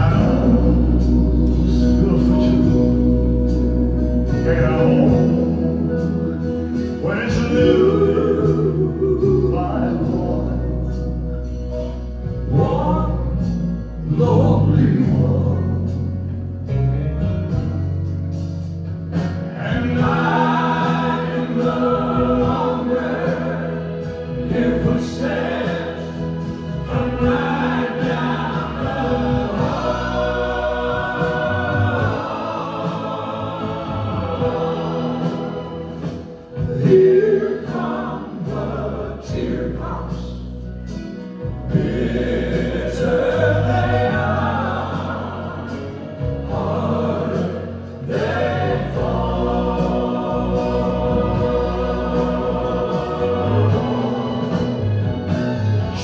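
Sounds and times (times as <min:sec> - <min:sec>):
voices singing in harmony: 0:00.0 - 0:16.2, 0:19.4 - 0:56.0
live country band playing: 0:00.0 - 0:56.0.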